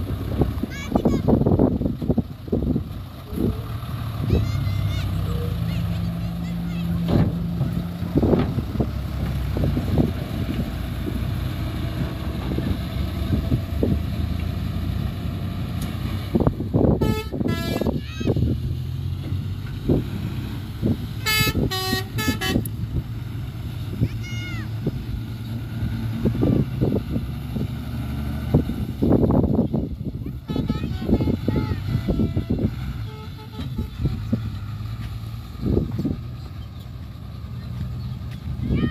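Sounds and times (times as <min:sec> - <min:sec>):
diesel truck engine under load: 0:00.0 - 0:38.9
short horn toots: 0:17.0 - 0:18.0, 0:21.2 - 0:22.7, 0:30.4 - 0:34.2.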